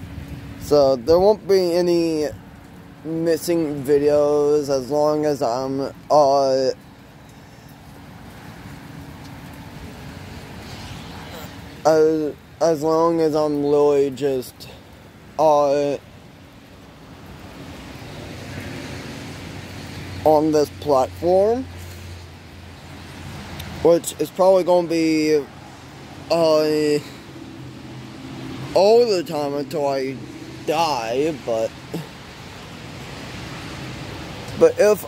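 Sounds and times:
rain falling: 0.0 - 35.0
tyres hissing on wet road: 0.0 - 35.0.

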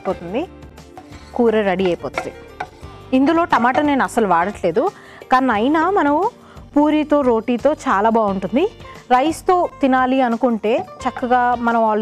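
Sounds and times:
spatula stirring in frying pan: 0.9 - 4.0.

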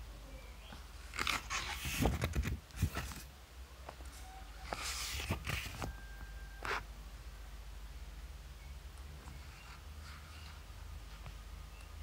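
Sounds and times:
paper page rustling: 1.1 - 3.3, 4.6 - 6.0.

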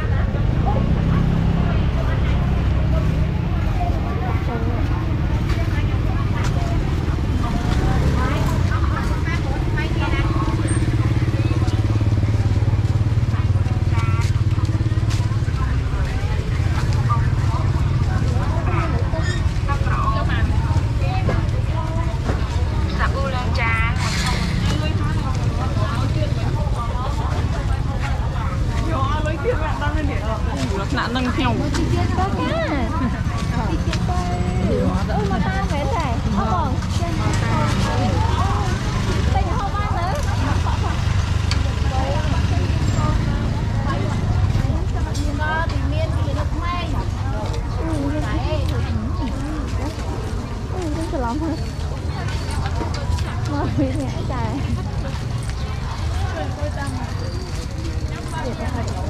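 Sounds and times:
chatter of vendors and shoppers: 0.0 - 59.0
motorbike engines rumbling: 0.0 - 59.0.

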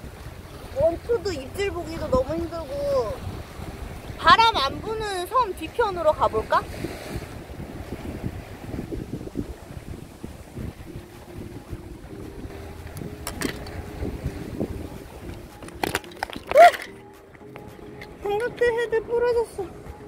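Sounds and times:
strong wind buffeting microphone: 0.0 - 20.0
camera handling knocks: 13.2 - 13.8, 15.6 - 17.0.

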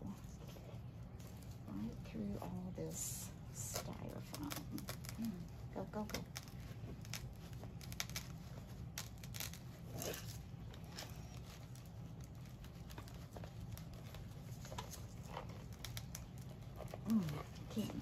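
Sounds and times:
artificial flowers rustling: 0.0 - 18.0.

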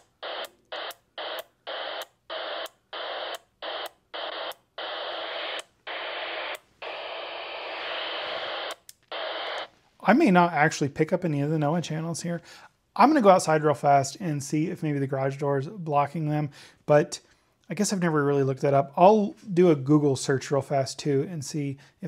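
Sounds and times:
radio static hiss: 0.0 - 10.2.

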